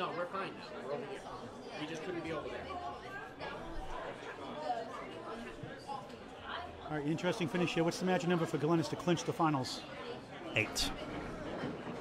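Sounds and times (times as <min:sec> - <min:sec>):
indistinct chatter of voices: 0:00.0 - 0:12.0.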